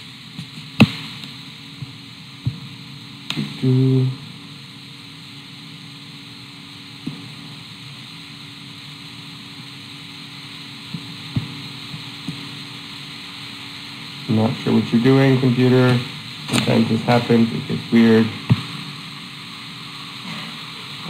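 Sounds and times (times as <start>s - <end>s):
hiss and electrical hum: 0.0s - 21.0s.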